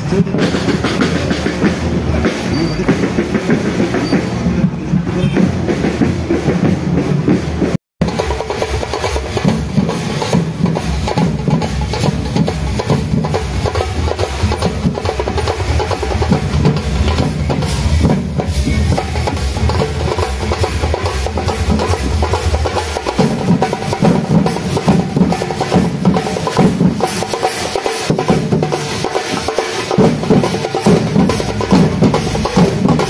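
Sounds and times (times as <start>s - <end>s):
marching procession drumming: 0.0s - 33.0s.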